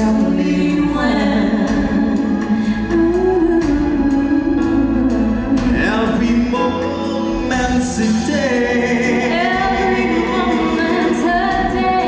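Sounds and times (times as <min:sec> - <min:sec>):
band accompaniment: 0:00.0 - 0:12.0
man and woman singing duet: 0:00.0 - 0:12.0.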